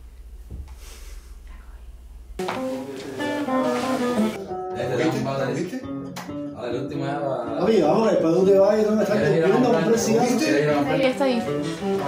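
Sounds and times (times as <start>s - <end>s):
plucked guitar notes: 2.4s - 12.0s.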